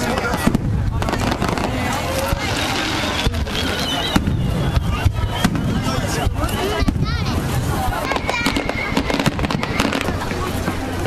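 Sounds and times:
sharp firework bang: 0.0s - 10.3s
fireworks bursting: 0.0s - 11.0s.

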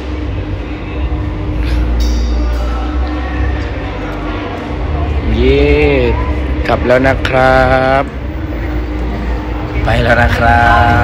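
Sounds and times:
man talking: 5.2s - 8.2s, 9.8s - 11.0s.

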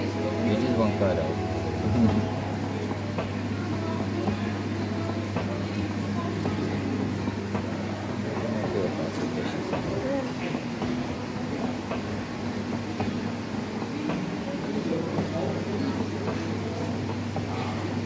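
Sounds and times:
faint voices chattering: 0.0s - 18.0s
steady low hum: 0.0s - 18.0s.

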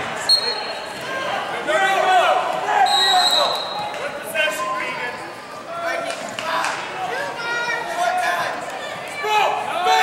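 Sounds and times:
referee's whistle blasts: 0.3s - 1.0s, 2.8s - 3.9s.

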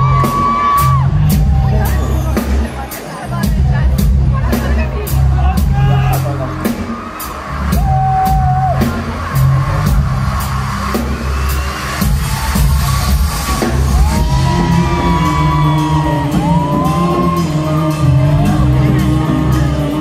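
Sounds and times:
live band playing amplified music: 0.0s - 20.0s.

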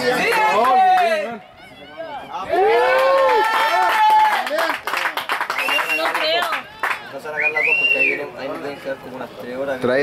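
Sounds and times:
spectators shouting and cheering: 0.0s - 4.9s, 5.5s - 9.7s
scattered clapping: 0.1s - 1.2s, 3.0s - 7.2s.

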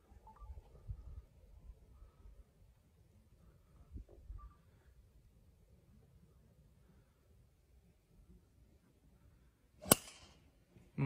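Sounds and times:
golf club swing swish: 9.8s - 10.3s
golf ball impact crack: 9.8s - 10.4s.

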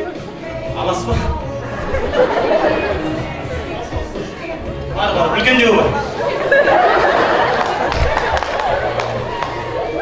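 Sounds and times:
background music: 0.0s - 10.0s
voices chattering: 0.0s - 10.0s.

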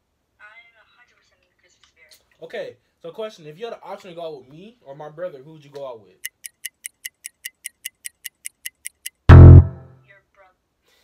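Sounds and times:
quick clock ticks: 6.2s - 9.3s.

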